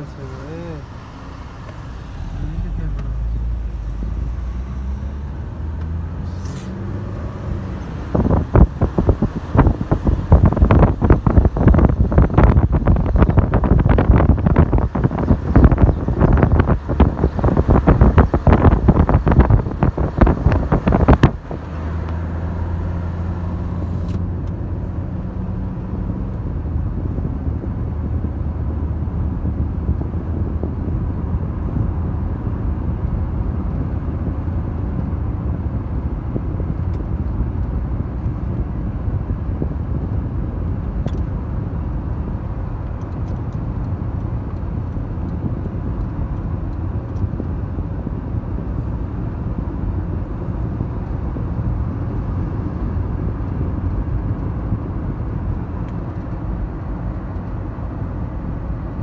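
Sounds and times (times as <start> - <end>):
car driving rumble: 0.0 - 59.0
wind buffeting microphone: 3.5 - 59.0.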